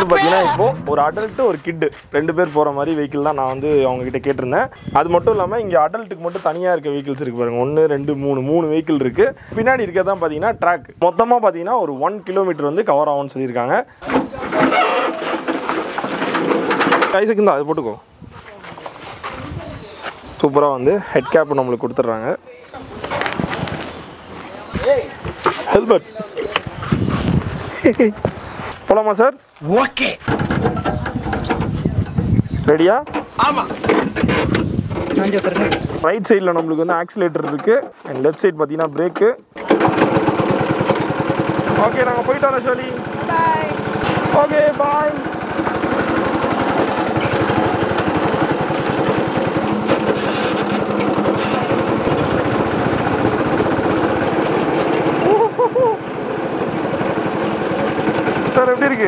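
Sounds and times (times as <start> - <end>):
small petrol engine running: 14.1 - 17.1, 39.6 - 59.0.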